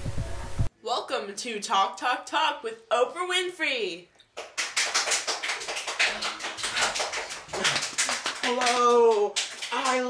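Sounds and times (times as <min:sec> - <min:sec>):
people clapping: 0:04.4 - 0:10.0.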